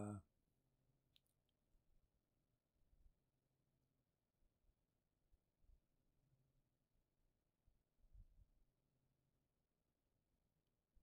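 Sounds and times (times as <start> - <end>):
person saying uh: 0.0 - 0.2.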